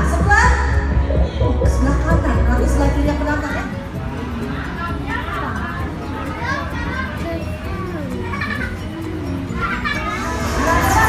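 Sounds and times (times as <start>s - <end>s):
background music: 0.0s - 11.0s
chatter of visitors: 0.0s - 11.0s
children's voices: 3.4s - 11.0s.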